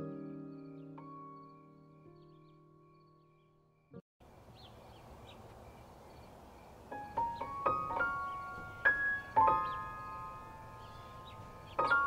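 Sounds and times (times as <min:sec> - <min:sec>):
soft bird chirps: 0:00.5 - 0:12.0
outdoor ambience: 0:04.2 - 0:12.0
piano note: 0:06.9 - 0:12.0.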